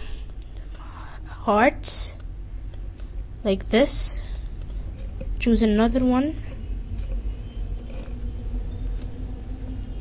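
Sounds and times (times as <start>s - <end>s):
low rumble and hum: 0.0s - 10.0s.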